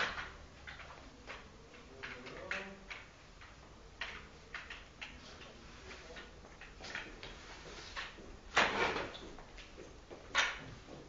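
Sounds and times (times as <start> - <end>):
broom sweeping concrete floor: 5.2 - 9.0.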